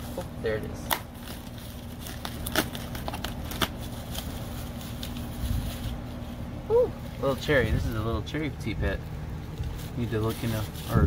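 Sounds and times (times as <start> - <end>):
low steady rumble: 0.0 - 11.0
knife cracking polystyrene foam: 0.1 - 6.1.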